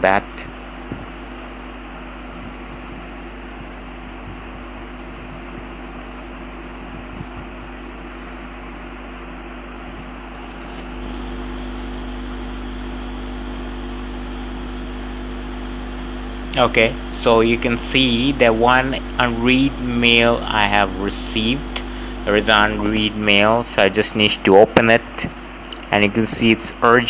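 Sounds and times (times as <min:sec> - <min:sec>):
low electrical hum: 0:00.0 - 0:27.0
microphone hiss: 0:16.2 - 0:27.0.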